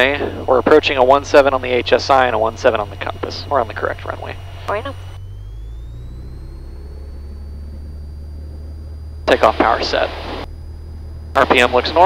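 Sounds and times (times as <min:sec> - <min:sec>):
engine whine rising in pitch: 0:00.0 - 0:12.0
propeller plane engine drone: 0:00.0 - 0:12.0.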